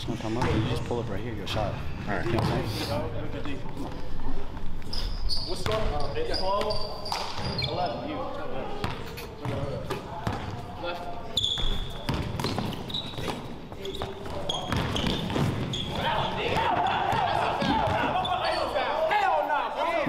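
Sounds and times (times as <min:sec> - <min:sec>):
players' voices: 0:00.0 - 0:20.0
sneaker squeaks: 0:04.8 - 0:08.2, 0:08.8 - 0:18.8
basketball bouncing on hardwood floor: 0:14.6 - 0:15.7.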